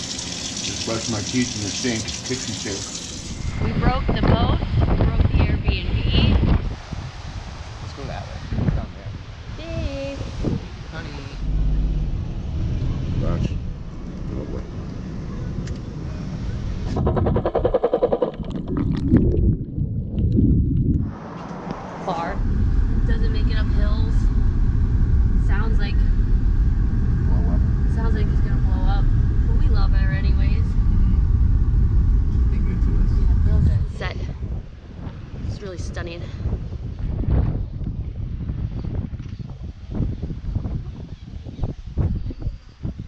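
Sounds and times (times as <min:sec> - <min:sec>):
outdoor noise: 0:00.0 - 0:43.0
car road and engine noise: 0:01.4 - 0:18.9, 0:20.5 - 0:42.2
rapid buzzing: 0:16.8 - 0:19.6.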